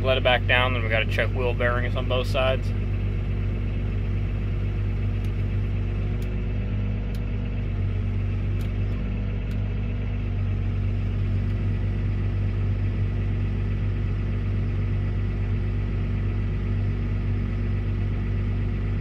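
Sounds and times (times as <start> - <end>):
tractor diesel engine rumbling: 0.0 - 19.0.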